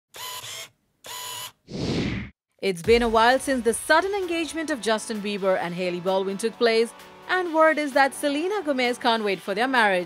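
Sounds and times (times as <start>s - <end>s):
camera shutter and winder: 0.2s - 2.2s
whoosh: 1.7s - 2.4s.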